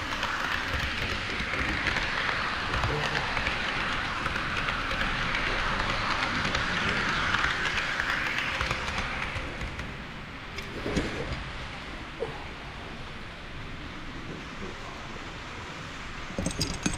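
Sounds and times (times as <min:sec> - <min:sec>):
model train wheels rattling on rails: 0:00.0 - 0:11.5, 0:16.2 - 0:16.9.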